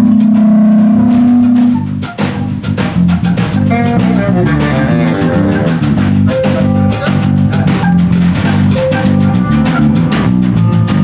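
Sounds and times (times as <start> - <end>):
bass line: 0.0 - 11.0
drum kit beat: 0.0 - 11.0
plucked strings: 2.1 - 10.5.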